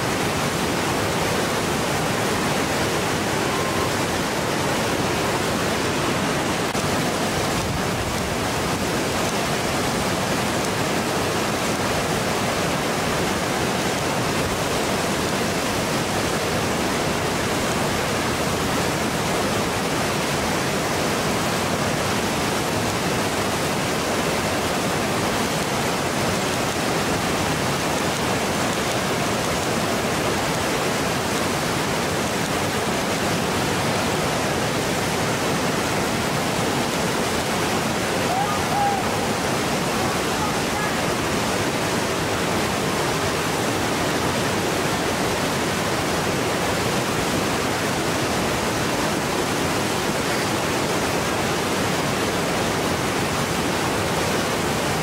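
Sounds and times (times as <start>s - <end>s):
whitewater rapid rushing: 0.0s - 55.0s.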